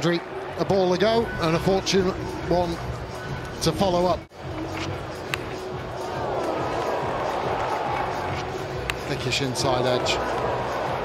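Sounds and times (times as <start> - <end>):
background music: 0.0 - 11.0
crowd noise: 0.0 - 11.0.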